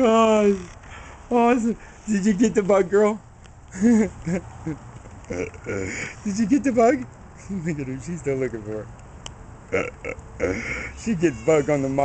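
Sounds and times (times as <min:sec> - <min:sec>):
man chuckling: 0:03.7 - 0:06.2.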